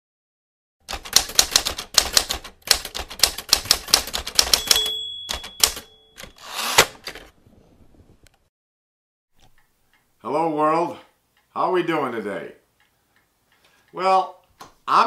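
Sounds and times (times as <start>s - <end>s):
typewriter key strikes: 0.9s - 6.4s
typewriter bell ringing: 4.4s - 6.7s
carriage return zip and clack: 6.2s - 7.3s.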